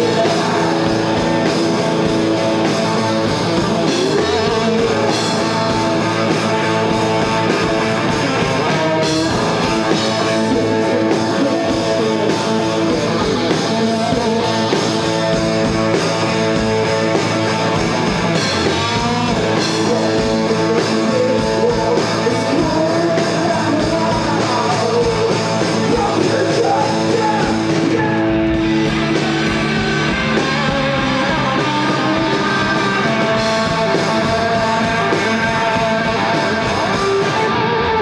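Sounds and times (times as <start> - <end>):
drum kit: 0.0 - 38.0
electric guitars: 0.0 - 38.0.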